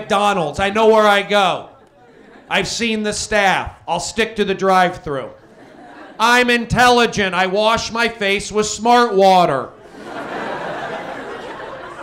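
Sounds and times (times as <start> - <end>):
audience laughing: 0.9 - 3.0, 5.4 - 6.5, 9.8 - 12.0.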